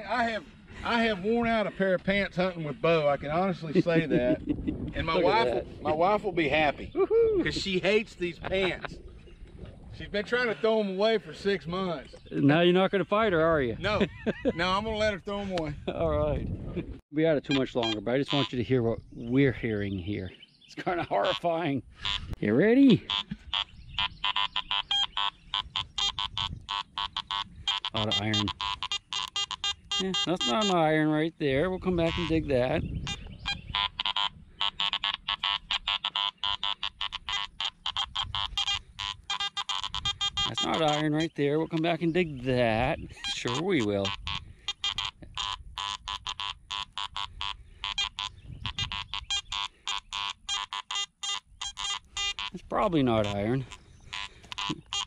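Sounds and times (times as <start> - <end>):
metal detector short beeps: 17.5 - 18.6, 22.0 - 22.3, 23.1 - 30.8, 32.0 - 41.9, 43.2 - 55.0.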